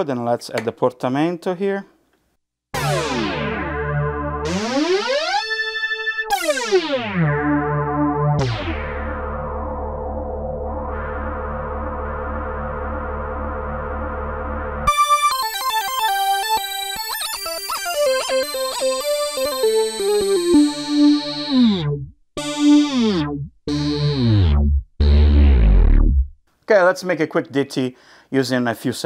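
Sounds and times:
synthesizer gliding lead line: 0:02.8 - 0:26.3.

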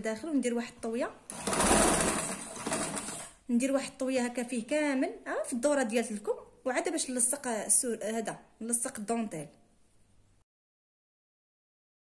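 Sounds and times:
electric sewing machine stitching: 0:01.3 - 0:03.4.

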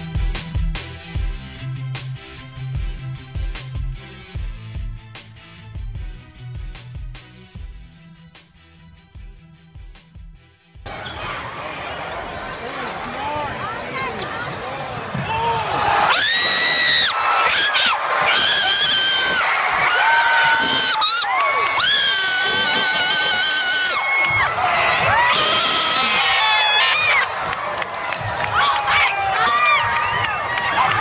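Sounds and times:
crowd cheering and shouting: 0:10.9 - 0:31.0
high-pitched screams: 0:16.1 - 0:24.5, 0:25.1 - 0:27.3.

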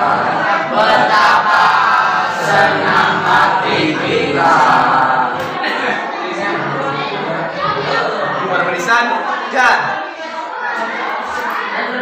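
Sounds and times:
boys chanting a cheer: 0:00.0 - 0:12.0.

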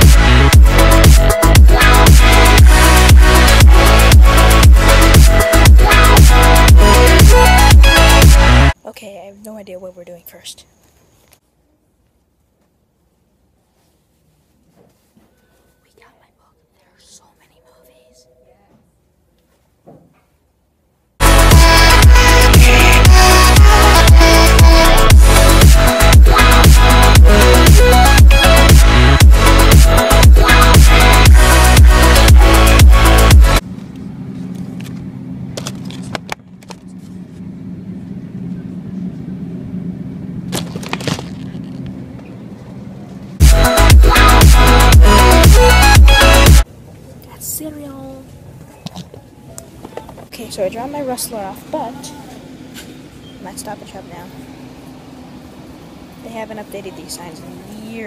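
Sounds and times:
electronic dance music: 0:00.0 - 0:08.7, 0:21.2 - 0:33.6, 0:43.4 - 0:46.6
person whispering: 0:15.8 - 0:18.8
knocks and rustles: 0:19.6 - 0:20.4
low hum: 0:21.2 - 0:46.6.

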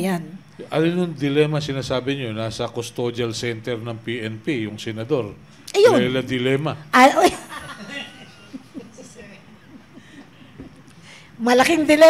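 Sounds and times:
soft chuckling: 0:07.5 - 0:10.7.

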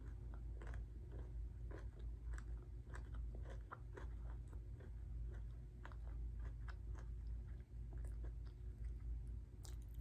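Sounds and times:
low hum: 0:00.0 - 0:10.0
person chewing crunchy food: 0:00.0 - 0:10.0.

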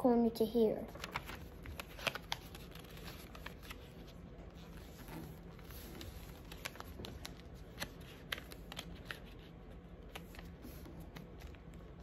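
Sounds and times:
paper folding and crackling: 0:00.8 - 0:12.0.

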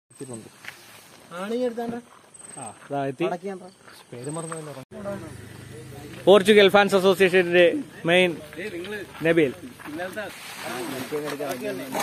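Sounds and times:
people talking: 0:02.6 - 0:12.0.

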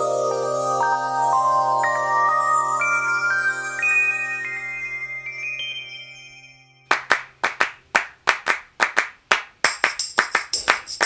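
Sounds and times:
handclap beat music: 0:06.9 - 0:11.0.

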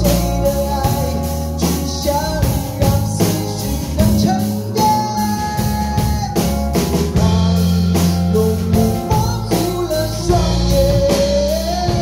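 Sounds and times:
live band playing pop ballad: 0:00.0 - 0:12.0
man singing: 0:00.0 - 0:12.0.

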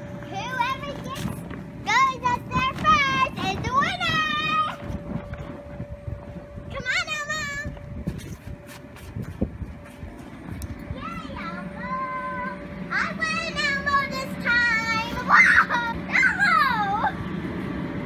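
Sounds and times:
air blower humming: 0:00.0 - 0:18.0.

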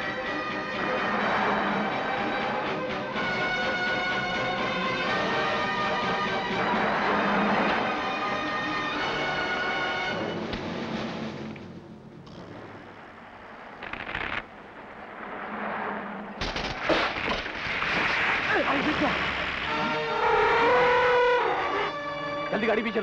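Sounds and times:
film background music: 0:00.0 - 0:12.3, 0:19.6 - 0:23.0
tree cracking and crashing: 0:12.3 - 0:20.0.

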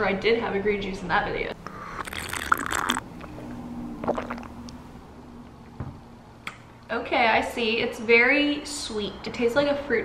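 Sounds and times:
mouth and lip sounds: 0:01.6 - 0:03.4, 0:04.0 - 0:04.8
person gulping and swallowing: 0:01.6 - 0:04.8.

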